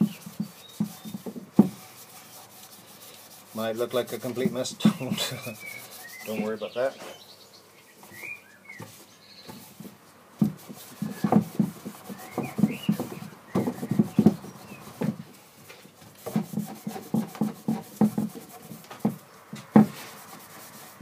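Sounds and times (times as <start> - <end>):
cloth rubbing wood: 0.0 - 7.0, 8.2 - 21.0.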